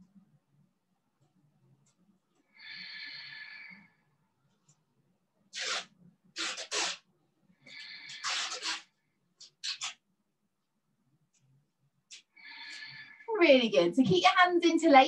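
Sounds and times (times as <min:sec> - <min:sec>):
short sharp bursts of breath: 0:07.6 - 0:08.9.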